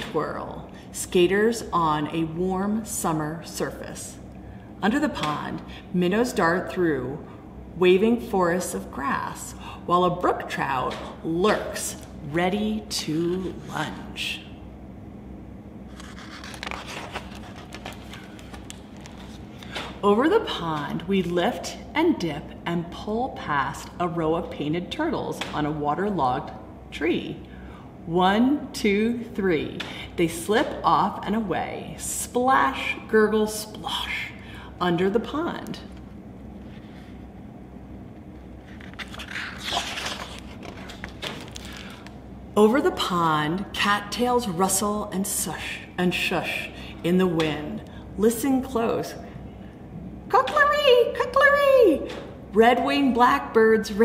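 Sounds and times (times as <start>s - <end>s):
low steady hum: 0.0s - 54.0s
paper pages crackling and turning: 15.9s - 19.8s, 38.6s - 42.2s.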